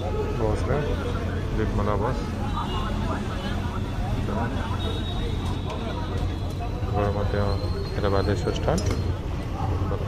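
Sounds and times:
bus engine drone: 0.0 - 10.0
people talking: 0.0 - 10.0.

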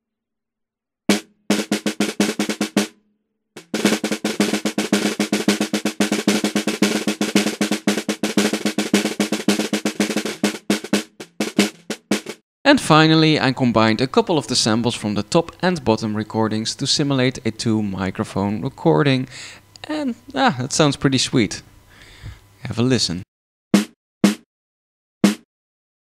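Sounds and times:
snare drum hits and rolls: 1.1 - 2.9, 3.6 - 12.4, 23.8 - 24.4, 25.2 - 25.5.

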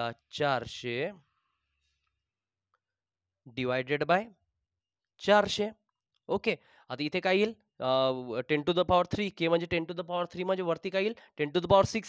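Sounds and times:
man talking: 0.0 - 1.2, 3.5 - 4.3, 5.2 - 12.0.

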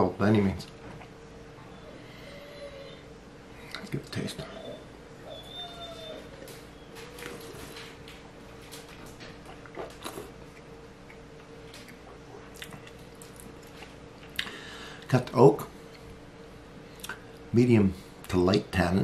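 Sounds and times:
low steady hum: 0.0 - 19.0
lip smacks and clicks: 17.0 - 17.2.

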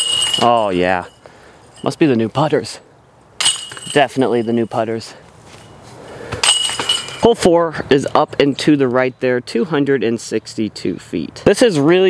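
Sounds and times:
chains jangling: 0.0 - 2.0, 3.4 - 5.8, 6.4 - 7.2
disc striking metal chains: 0.0 - 2.1, 3.4 - 5.8, 6.4 - 7.3.

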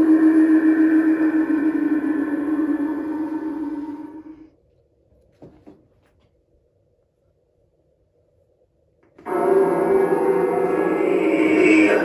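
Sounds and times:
loud music of sustained tones: 0.0 - 4.5, 9.2 - 12.0
faint hum: 0.0 - 12.0.

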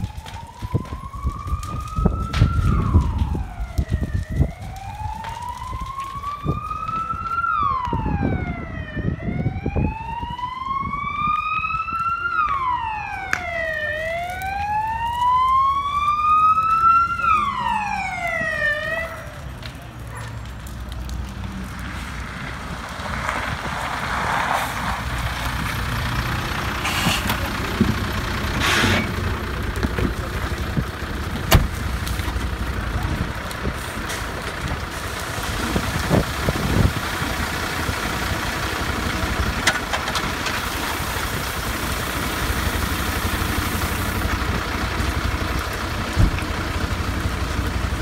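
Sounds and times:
knocks and crackles: 0.0 - 8.0, 18.3 - 48.0
fire engine siren wailing: 0.0 - 48.0
low engine rumble: 0.0 - 48.0.

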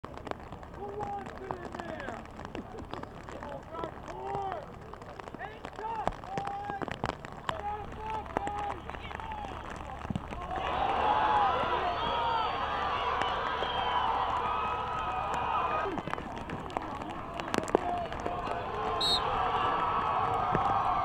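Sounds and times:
crowd cheering: 5.7 - 21.0
crowd shouts and calls: 5.7 - 21.0.

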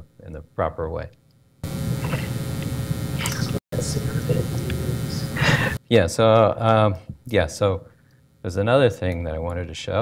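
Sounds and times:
electrical mains hum and hiss: 0.0 - 10.0.

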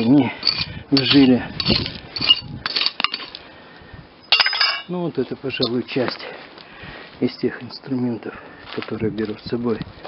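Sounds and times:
metallic clink with ring: 4.2 - 4.9.

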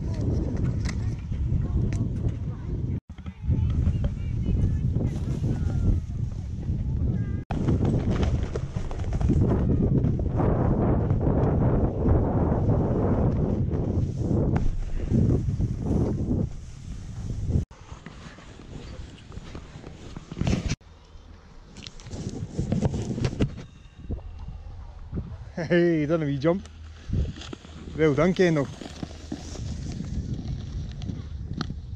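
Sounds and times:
wind rumbling on microphone: 0.0 - 20.8, 21.8 - 25.8, 26.8 - 31.9
snowboard scraping over snow: 7.6 - 20.8, 26.9 - 31.3.

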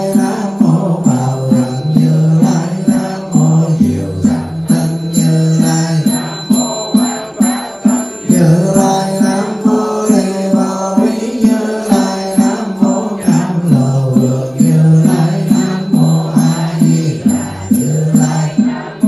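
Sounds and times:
monk chanting into microphone: 0.0 - 19.0.

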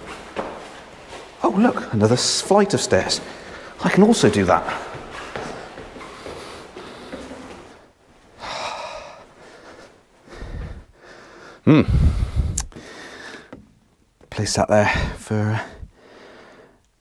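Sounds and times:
man breathing heavily: 3.2 - 3.9, 4.6 - 13.6, 14.8 - 16.9
man humming hmm: 11.6 - 12.7.

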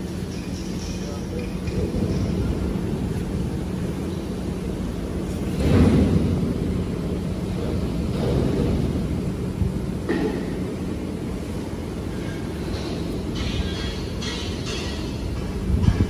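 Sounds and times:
factory machinery humming: 0.0 - 16.0.

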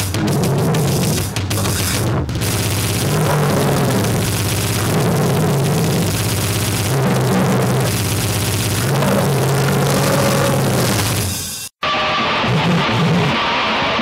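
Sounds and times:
distorted wall of noise: 0.0 - 14.0
low droning tones: 0.8 - 11.2.

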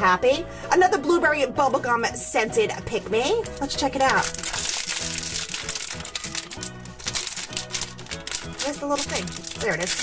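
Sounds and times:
background music: 0.0 - 10.0
plastic wrapper crinkling: 3.4 - 10.0.

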